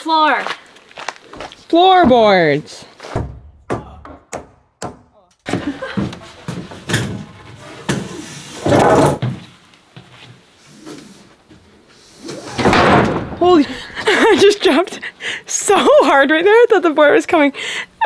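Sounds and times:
sharp wooden knocks: 0:03.1 - 0:05.6.

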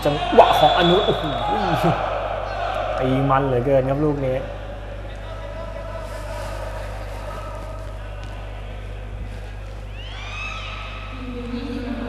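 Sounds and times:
hum and murmur of sports hall: 0:00.0 - 0:12.0.

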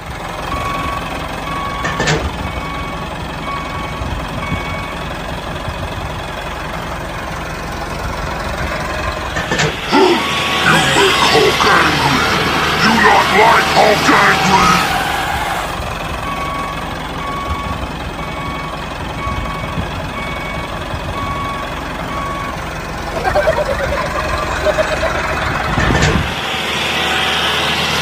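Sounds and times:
heavy vehicle engine rumble: 0:00.0 - 0:28.0
reversing alarm beeping: 0:00.5 - 0:05.0, 0:10.0 - 0:14.7, 0:16.2 - 0:25.9.

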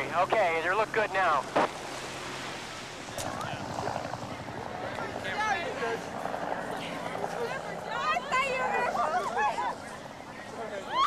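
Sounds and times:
faint voices: 0:02.5 - 0:11.0.

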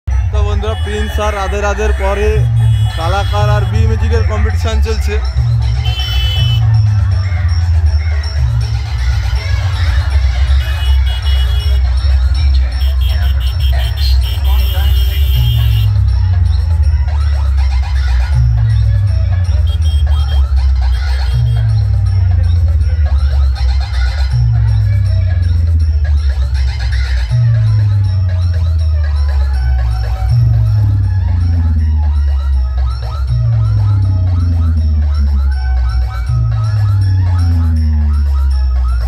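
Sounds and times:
loud music from stacked speakers: 0:00.1 - 0:39.0.

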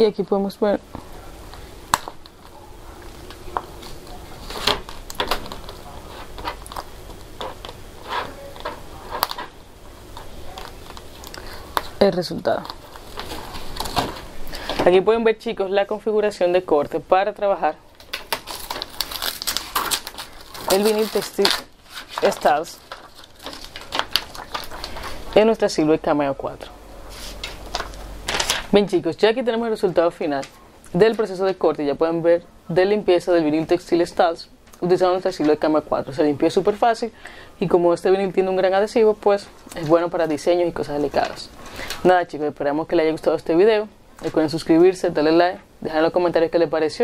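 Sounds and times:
vinyl crackling and scraping: 0:00.0 - 0:32.2, 0:32.8 - 0:47.0
vinyl peeling off carrier sheet: 0:18.0 - 0:25.4.

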